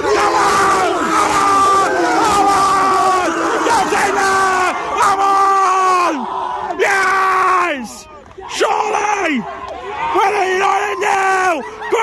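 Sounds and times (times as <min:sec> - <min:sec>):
group shouting and cheering: 0:00.0 - 0:12.0.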